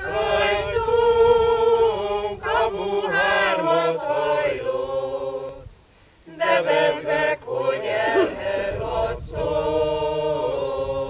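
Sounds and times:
group singing unaccompanied: 0.0s - 11.0s.

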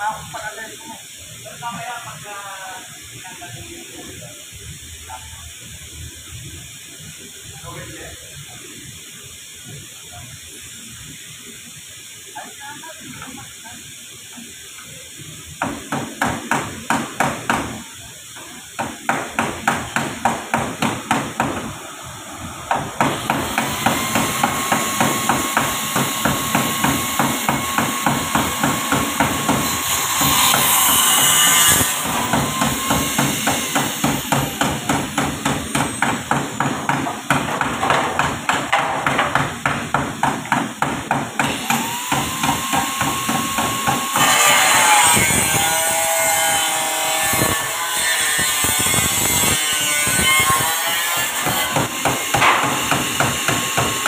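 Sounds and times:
bursts of hiss: 0.0s - 47.8s
hammer blows on sheet metal: 51.4s - 54.0s.

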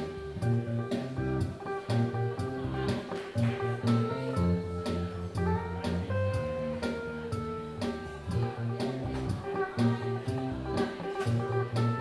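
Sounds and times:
electric bass: 0.0s - 12.0s
electric guitar: 0.0s - 12.0s.

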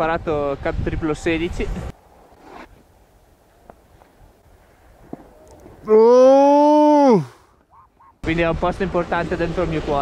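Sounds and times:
person yelling: 5.8s - 7.4s.

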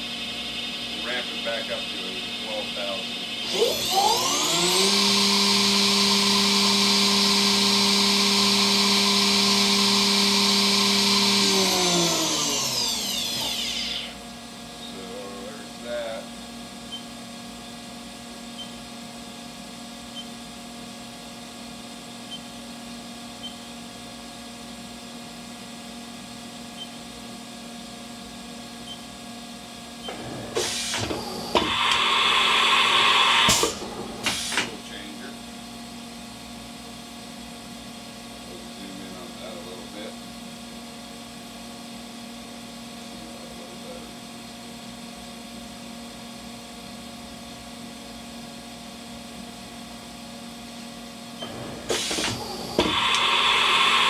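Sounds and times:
machine spindle whining: 0.0s - 14.2s, 30.0s - 34.8s, 51.4s - 54.0s.

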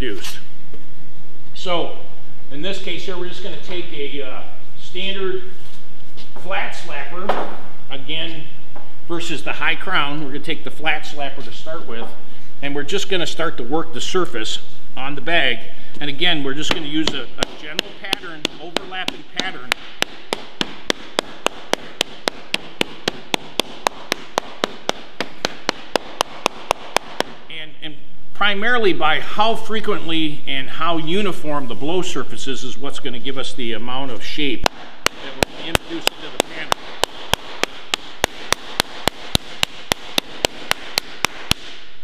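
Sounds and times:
wooden slapper striking steel sheet: 16.6s - 27.4s, 34.6s - 41.9s.

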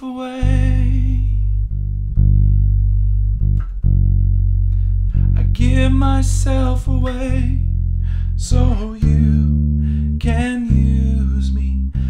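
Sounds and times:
electric bass notes: 0.4s - 12.0s.

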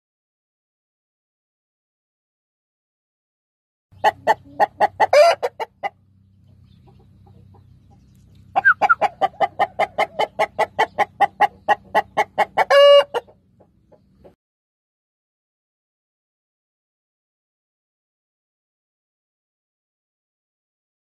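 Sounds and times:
chicken drawn-out call: 4.0s - 6.0s, 6.8s - 14.2s
chicken clucking: 4.0s - 14.4s.

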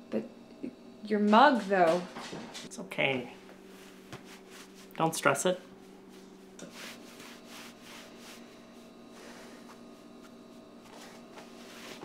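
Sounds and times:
faint electrical hum: 0.0s - 12.0s
soft rustling: 3.7s - 5.0s, 5.8s - 8.9s, 9.5s - 12.0s.

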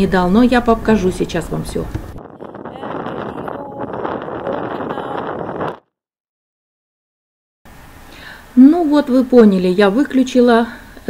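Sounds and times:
wind buffeting microphone: 0.0s - 5.8s.

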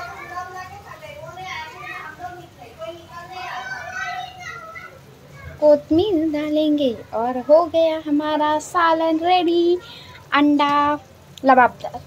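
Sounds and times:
young child talking: 0.0s - 12.0s.

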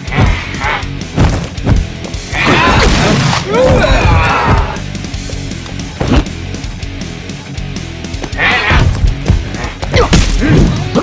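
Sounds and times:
loud cry: 8.3s - 8.9s.

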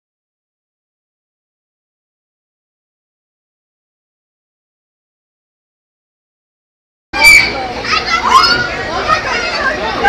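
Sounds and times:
crowd of young people talking: 7.2s - 10.0s.

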